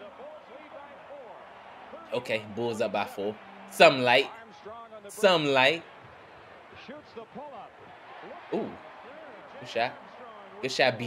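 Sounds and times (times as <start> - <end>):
arena crowd noise: 0.0 - 11.0
commentator talking: 2.0 - 5.9, 8.4 - 8.8, 9.5 - 11.0.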